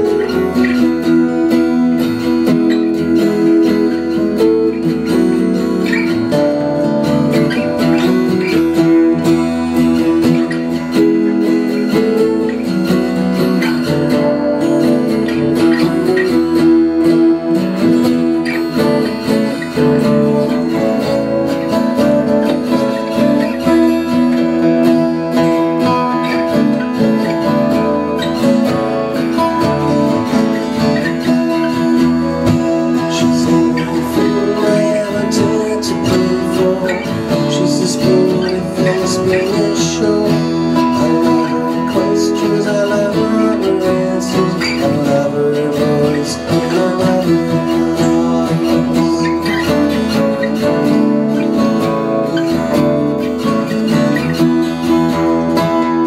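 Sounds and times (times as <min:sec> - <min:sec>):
acoustic guitars playing: 0:00.0 - 0:56.0.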